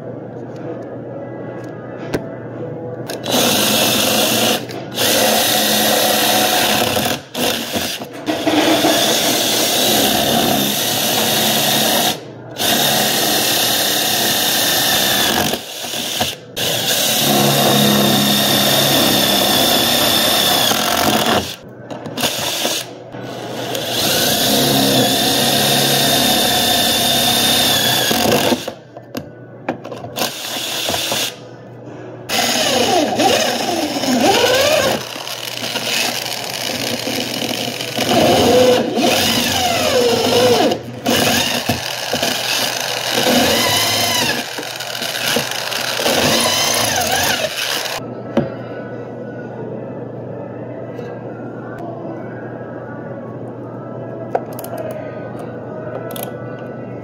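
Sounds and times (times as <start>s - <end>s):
impact driver drilling into metal: 3.1s - 21.6s, 23.7s - 28.8s, 32.3s - 48.0s.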